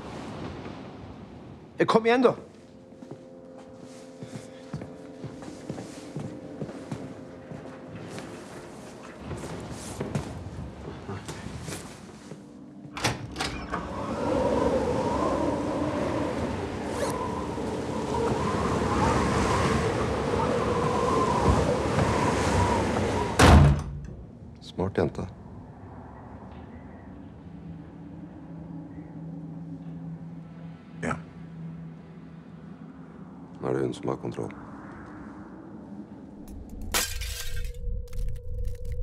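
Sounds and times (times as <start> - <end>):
howling blizzard wind: 0.0 - 39.0
low musical drone: 2.4 - 21.9, 25.3 - 39.0.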